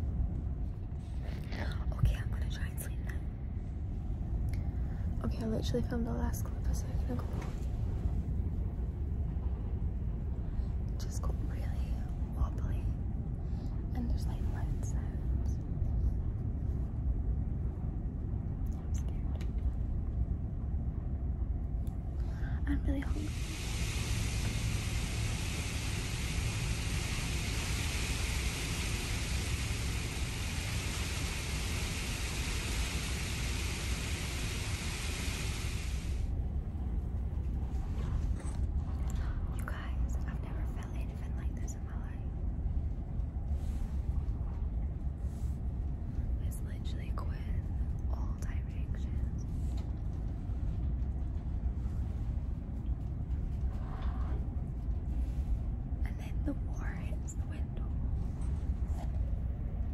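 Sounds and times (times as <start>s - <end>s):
ship engine rumble: 0.0s - 59.9s
woman whispering: 1.2s - 3.5s, 5.2s - 7.6s, 10.9s - 13.1s, 13.8s - 15.9s, 18.6s - 19.6s, 22.2s - 23.5s, 39.1s - 42.5s, 46.2s - 49.8s, 56.0s - 58.4s
storm hiss: 22.1s - 36.4s.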